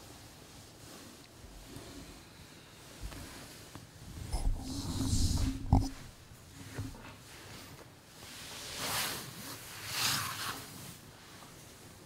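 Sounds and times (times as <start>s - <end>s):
rubbing and bumping handling noise: 4.2s - 7.1s.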